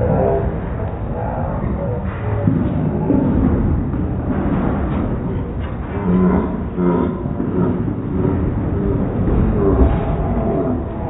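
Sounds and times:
low bending tones: 0.0 - 11.0
slowed clatter: 0.0 - 11.0.

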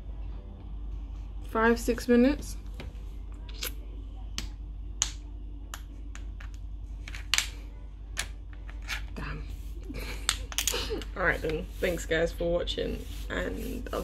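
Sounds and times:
low steady hum: 0.0 - 14.0.

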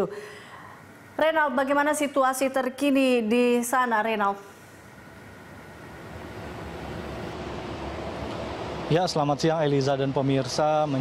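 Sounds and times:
highway traffic rumble: 5.9 - 11.0.

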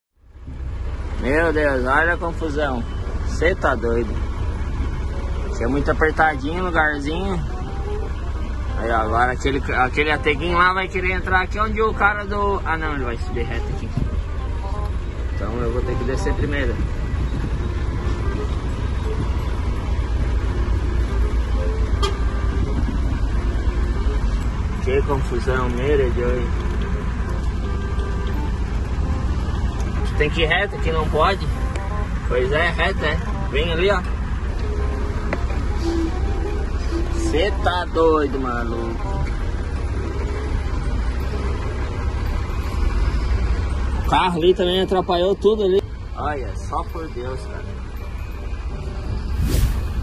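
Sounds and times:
diesel engine low rumble: 0.2 - 50.0.

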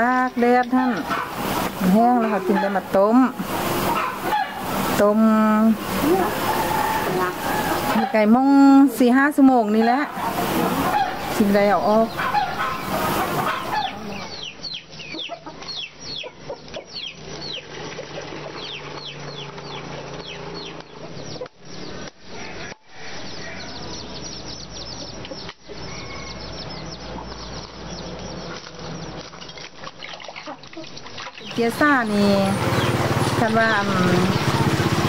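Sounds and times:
chickens cheeping: 0.1 - 5.1, 5.7 - 35.0.

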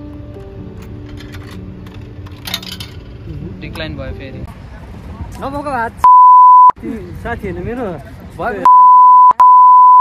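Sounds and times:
censor bleep tone: 6.0 - 6.8, 8.7 - 10.0.

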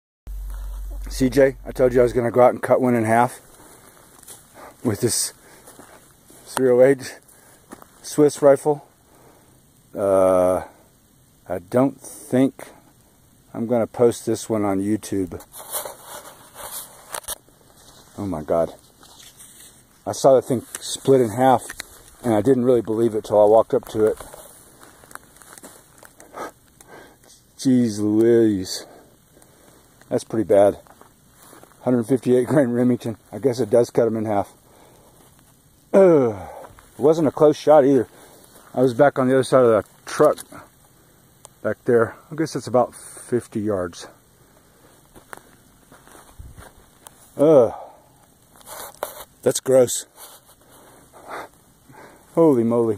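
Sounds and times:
footsteps on dry dirt and grass: 0.3 - 2.2, 20.6 - 26.2, 30.8 - 32.1, 45.0 - 47.3.

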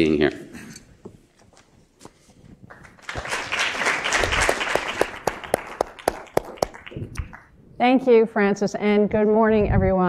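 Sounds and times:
audience applauding: 2.7 - 7.5.

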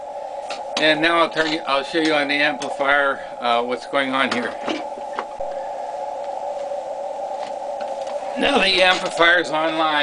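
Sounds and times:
radio receiver hiss: 0.0 - 10.0.

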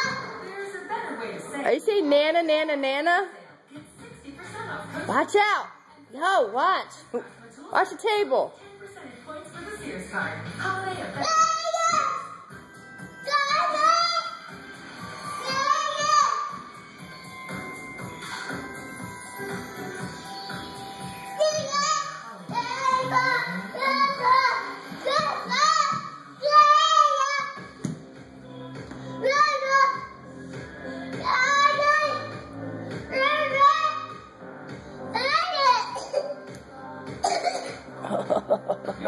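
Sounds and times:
young child coughing: 35.8 - 36.5, 37.2 - 37.9.

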